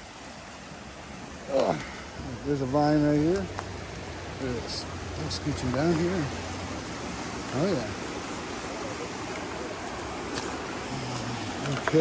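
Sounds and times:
water rushing over rocks: 0.0 - 12.0.

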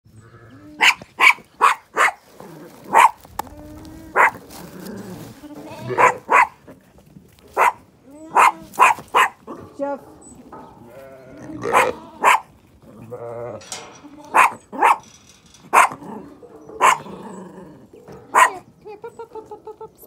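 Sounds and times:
dog barking sharply: 0.8 - 2.2, 2.9 - 3.2, 6.0 - 6.6, 8.4 - 9.4, 11.7 - 12.5
sheep bleating: 5.2 - 6.2, 10.8 - 12.4.

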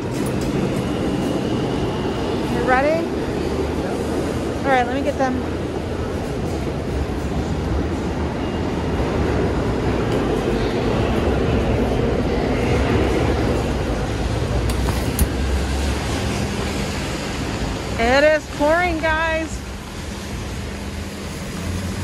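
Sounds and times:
street traffic rumble: 0.0 - 22.0.

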